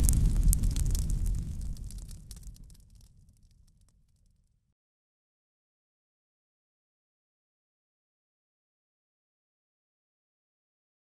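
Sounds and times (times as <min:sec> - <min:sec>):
low boom rumble: 0:00.0 - 0:03.4
faint crackles: 0:00.0 - 0:04.6.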